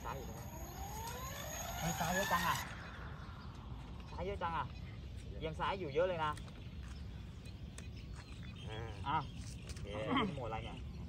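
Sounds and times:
rotor whine rising in pitch: 0.0 - 4.1.

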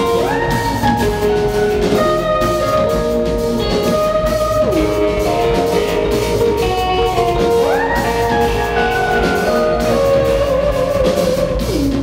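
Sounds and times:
drum kit: 0.0 - 12.0
sliding electric guitar notes: 0.0 - 12.0.

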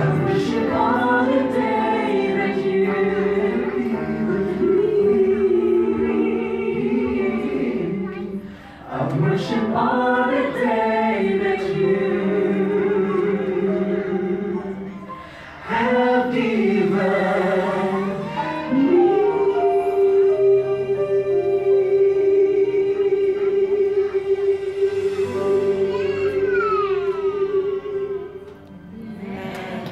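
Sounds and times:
group singing in harmony: 0.0 - 29.9.

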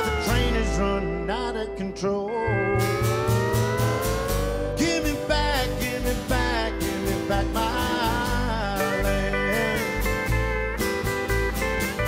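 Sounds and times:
acoustic guitar strumming: 0.0 - 12.0
plucked upright bass: 0.0 - 12.0
long sliding note: 2.5 - 6.1.

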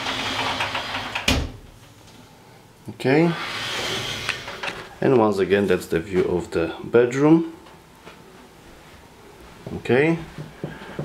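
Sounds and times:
sliding door running on track: 0.0 - 1.4.

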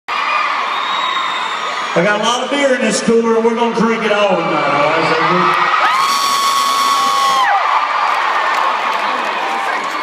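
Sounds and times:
arena crowd cheering: 0.1 - 10.0
high-pitched screams: 5.7 - 7.6.

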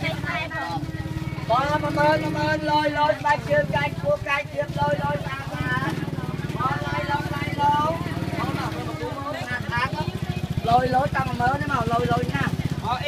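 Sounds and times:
people talking: 0.0 - 13.0
small engine running: 0.0 - 13.0.

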